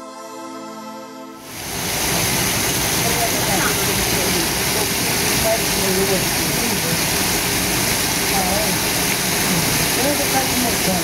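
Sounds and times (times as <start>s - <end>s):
rushing outdoor noise: 1.4s - 11.0s.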